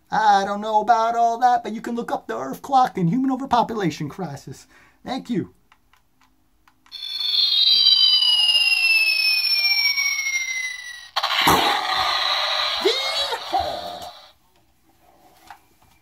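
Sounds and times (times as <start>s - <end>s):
falling whistle effect: 6.9s - 13.3s
explosion-like noise: 11.1s - 14.2s.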